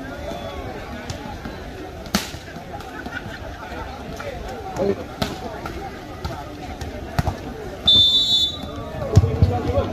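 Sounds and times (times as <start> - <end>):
crowd chatter: 0.0 - 9.9
balls bouncing on hard court: 8.6 - 9.9.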